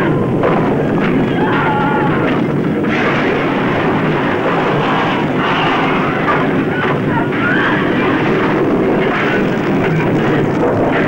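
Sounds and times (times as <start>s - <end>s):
earthquake rumble sound effect: 0.0s - 11.0s.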